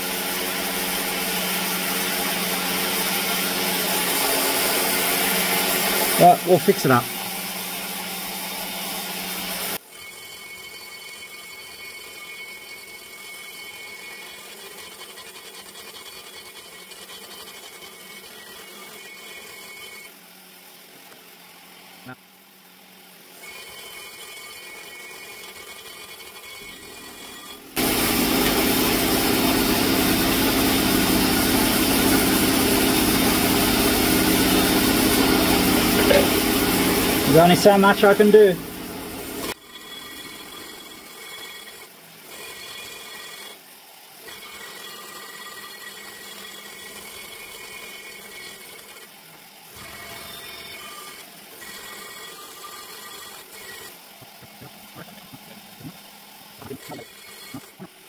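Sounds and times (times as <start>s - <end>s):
die grinder grinding metal: 0.0s - 20.2s, 23.2s - 58.0s.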